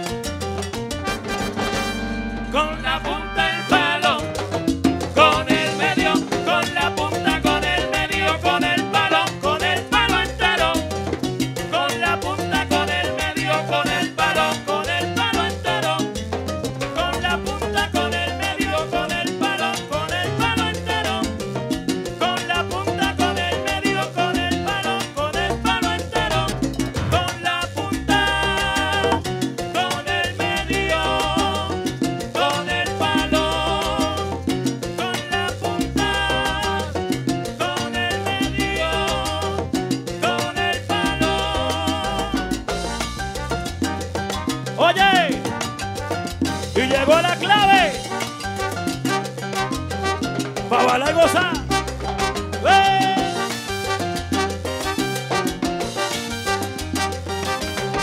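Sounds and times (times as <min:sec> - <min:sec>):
live salsa band playing: 0:00.0 - 0:58.0.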